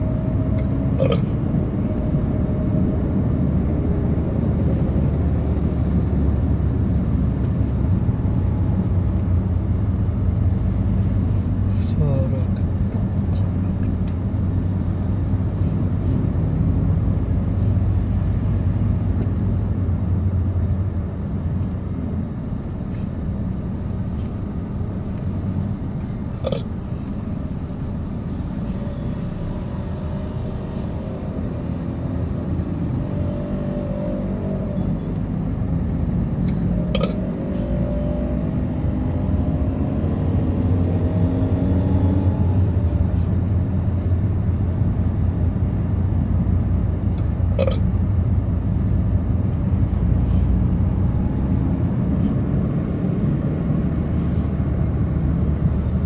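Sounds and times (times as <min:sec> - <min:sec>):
car engine and road rumble: 0:00.0 - 0:56.0
passing vehicle engine tones: 0:00.0 - 0:56.0.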